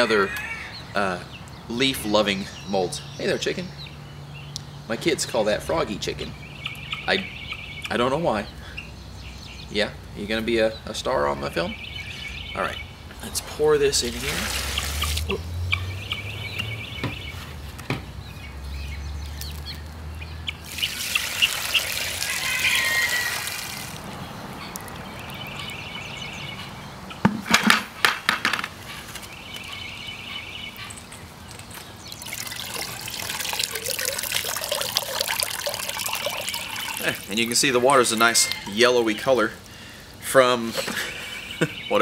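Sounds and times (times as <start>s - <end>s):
liquid splashing and trickling: 13.7s - 15.4s, 20.6s - 26.0s, 32.0s - 38.5s.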